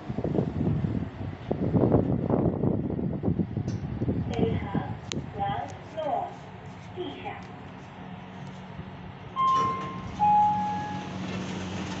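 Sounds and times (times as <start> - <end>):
elevator car low hum: 0.0 - 12.0
elevator chime two notes: 9.4 - 11.2.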